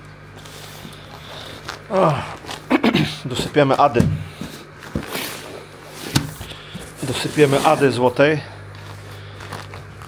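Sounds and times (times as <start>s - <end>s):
low steady hum: 0.0s - 10.0s
plastic bag crinkling: 8.7s - 10.0s.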